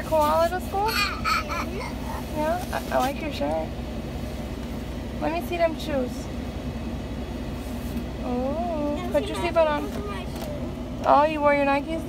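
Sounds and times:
faint constant hum: 0.0s - 12.0s
vehicle engine idling: 0.0s - 12.0s.

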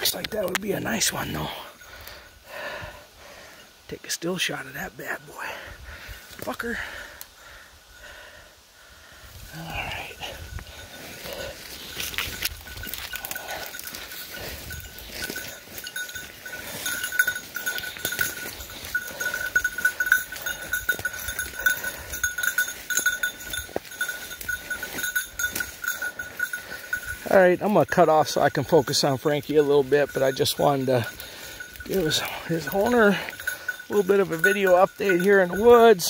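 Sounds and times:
footsteps through undergrowth: 9.4s - 36.0s
dog collar bell ringing: 9.5s - 36.0s.

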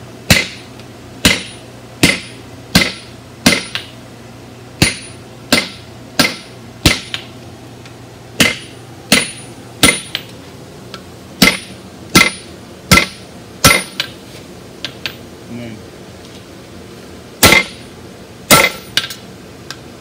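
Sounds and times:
sledgehammer blows on anvil: 0.3s - 3.9s, 4.8s - 7.2s, 8.4s - 10.2s, 11.4s - 14.1s, 17.4s - 17.8s, 18.5s - 19.0s.

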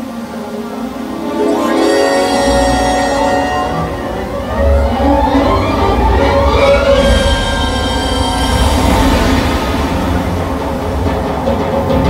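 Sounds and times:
loud soundtrack music: 0.2s - 12.0s
heavy low rumble: 3.8s - 12.0s.

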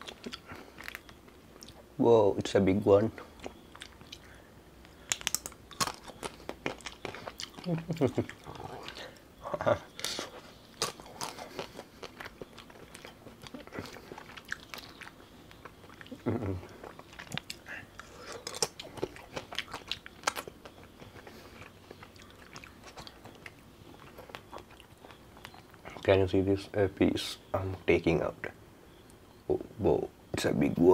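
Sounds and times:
chewing frozen ice cream: 0.0s - 1.9s, 3.1s - 26.1s
wet mouth sounds: 10.0s - 23.6s.

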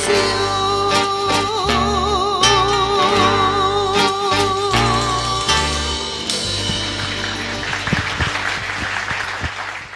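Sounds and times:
audience applause: 6.5s - 9.9s.

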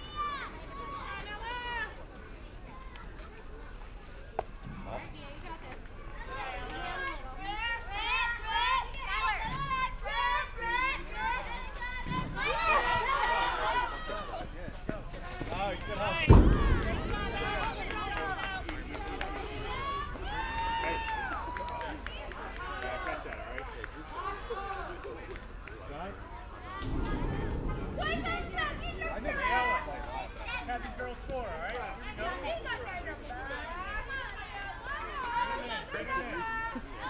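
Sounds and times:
girls cheering and chanting: 0.0s - 2.1s, 6.1s - 14.4s, 15.8s - 23.2s
loud thump: 16.2s - 17.6s, 26.8s - 30.6s.

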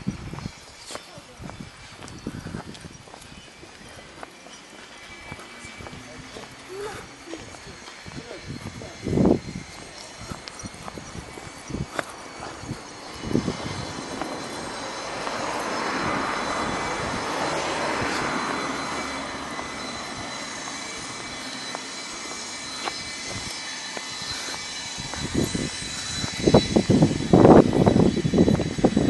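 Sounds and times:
steady traffic hum: 0.0s - 29.0s
vehicle passing by: 11.9s - 29.0s.

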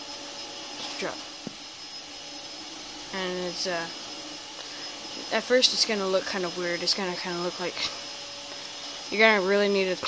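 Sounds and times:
vacuum cleaner running: 0.0s - 10.0s.

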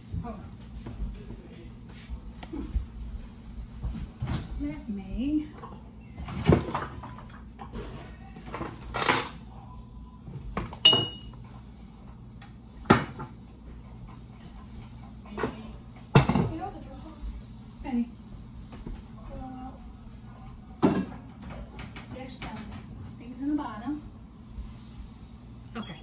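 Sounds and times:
pans and dishes clattering: 10.7s - 11.3s, 15.2s - 16.7s, 20.8s - 22.8s.

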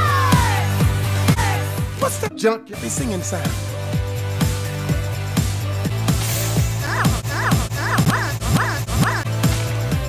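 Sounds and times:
music with low tone and beat: 0.0s - 10.0s.

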